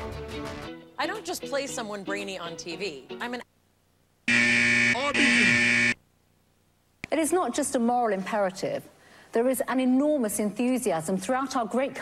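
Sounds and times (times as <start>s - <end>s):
loud electronic buzz: 4.3s - 6.0s.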